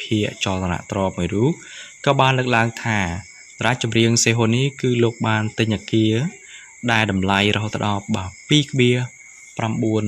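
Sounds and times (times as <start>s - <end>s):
high-pitched tones humming: 0.0s - 10.0s
person narrating: 0.0s - 10.0s.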